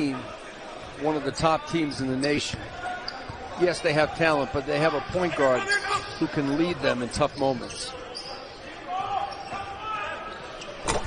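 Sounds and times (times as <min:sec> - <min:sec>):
shoe squeaks on court: 0:05.8 - 0:08.6.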